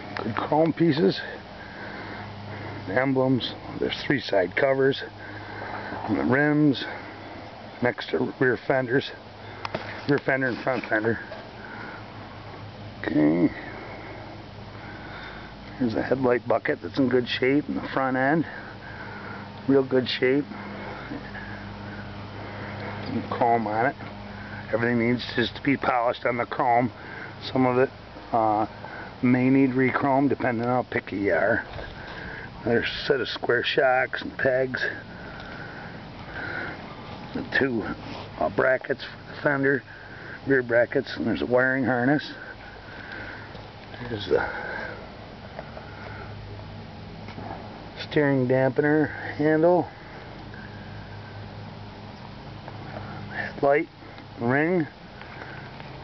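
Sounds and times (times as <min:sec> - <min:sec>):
breathing or sniff: 0:13.6 - 0:15.7, 0:35.0 - 0:38.4.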